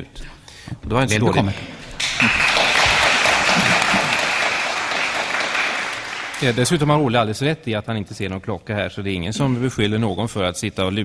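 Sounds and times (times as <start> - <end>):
audience applauding: 2.0 - 7.1.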